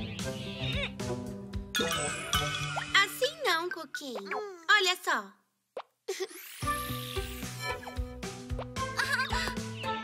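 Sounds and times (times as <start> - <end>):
bright children's music: 0.0 - 3.9, 6.3 - 10.0
high child-like voice: 2.9 - 5.2.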